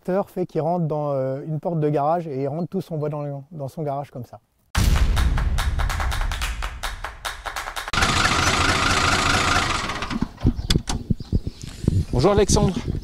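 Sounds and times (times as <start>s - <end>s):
engine-like sound effects: 8.0s - 10.2s.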